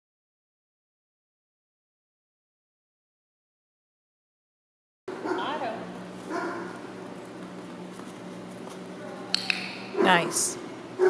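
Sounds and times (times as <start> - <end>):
steady low hum: 5.1 - 11.0.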